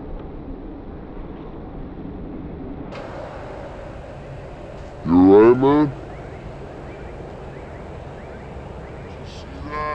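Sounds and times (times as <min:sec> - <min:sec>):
low rumble of street traffic: 0:00.0 - 0:09.9.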